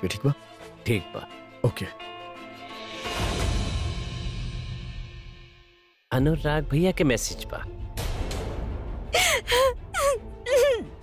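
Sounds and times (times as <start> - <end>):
woman gasping: 9.2 - 11.0
woman whimpering and weeping: 9.2 - 11.0.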